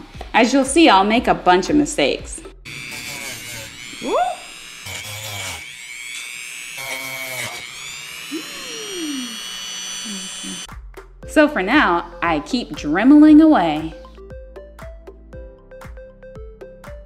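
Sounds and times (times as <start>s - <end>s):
rotary tool sanding foam: 2.6s - 10.7s.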